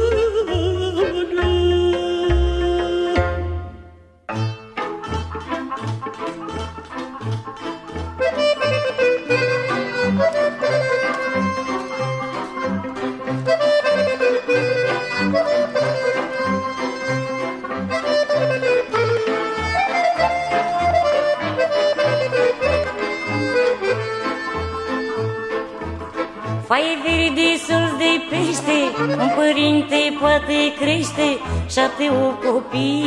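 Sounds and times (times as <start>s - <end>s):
folk band playing instrumental: 0.0s - 33.0s.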